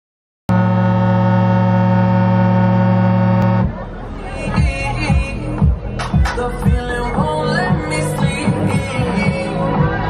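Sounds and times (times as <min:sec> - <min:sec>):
loud electronic drone: 0:00.5 - 0:04.7
noisy fairground mix: 0:00.5 - 0:10.0.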